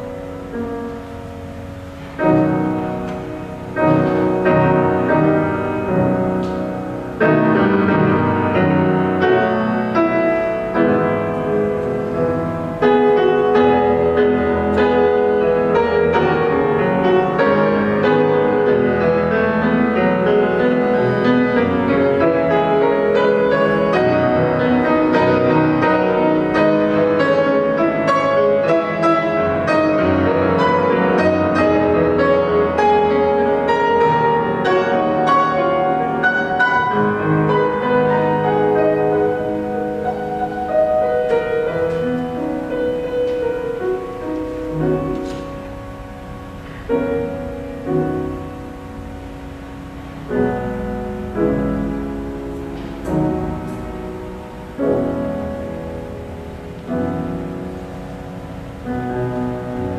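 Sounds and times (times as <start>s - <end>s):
grand piano improvisation: 0.0s - 59.9s.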